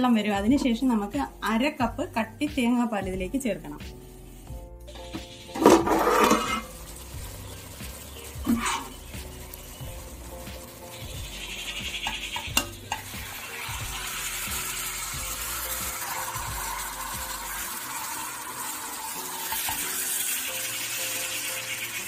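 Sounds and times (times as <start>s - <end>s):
chicken sizzling in oil: 0.5s - 22.0s
wooden spatula stirring: 5.2s - 13.1s.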